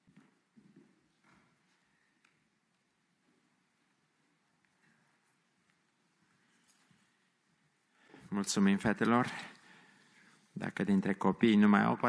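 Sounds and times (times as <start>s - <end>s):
soft footsteps: 0.0s - 10.6s.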